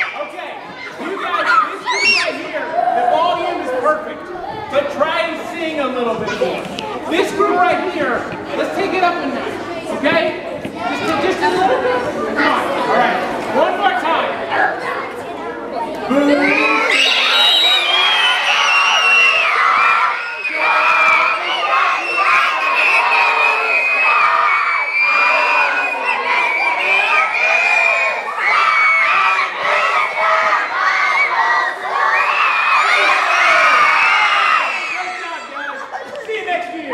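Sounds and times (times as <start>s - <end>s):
children shout-singing: 0.0s - 3.5s, 16.1s - 35.8s.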